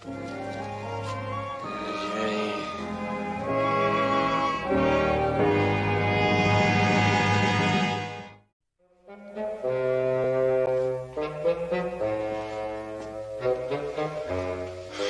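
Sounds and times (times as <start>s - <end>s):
orchestral score: 0.0s - 8.4s, 9.0s - 15.0s.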